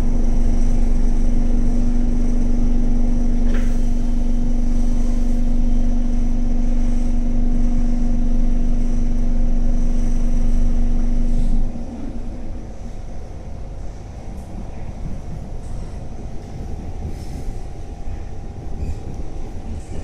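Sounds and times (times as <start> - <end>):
train interior low hum: 0.0 - 20.0
wheel and track rumble: 0.0 - 20.0.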